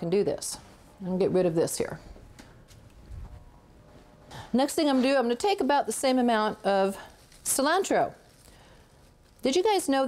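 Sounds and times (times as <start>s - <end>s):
footsteps on hard floor: 2.6s - 4.5s.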